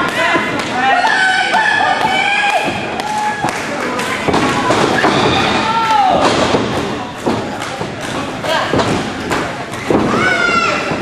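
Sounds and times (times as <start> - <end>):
crowd chatter and shouts: 0.0 - 11.0.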